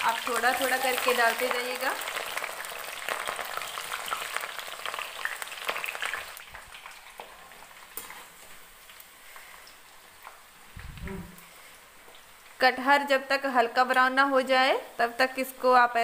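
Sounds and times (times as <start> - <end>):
food deep-frying in hot oil: 0.0 - 16.0.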